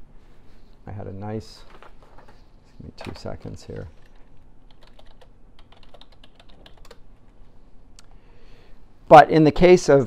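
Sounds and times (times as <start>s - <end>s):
computer keyboard typing: 3.0s - 7.0s.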